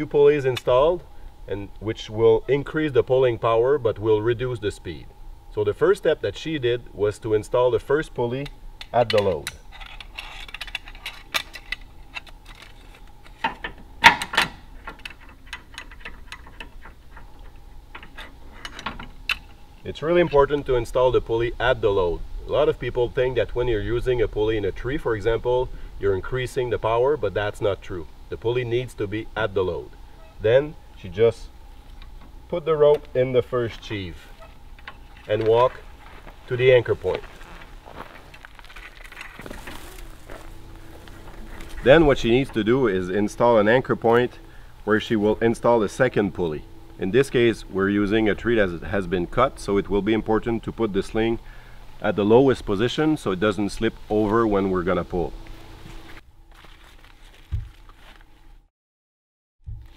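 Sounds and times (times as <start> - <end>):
rope dragging over ground: 35.3 - 42.4
footsteps crunching on gravel: 35.3 - 42.5, 55.5 - 58.4.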